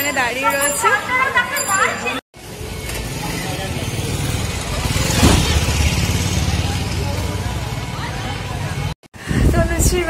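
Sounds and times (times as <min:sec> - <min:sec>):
street traffic rumble: 0:02.4 - 0:10.0
vehicle passing close: 0:02.5 - 0:09.0.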